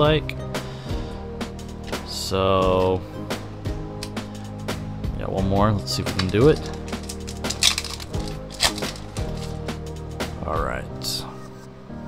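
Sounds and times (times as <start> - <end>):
background music: 0.0 - 12.0
foil wrapper tearing and crinkling: 6.1 - 9.6.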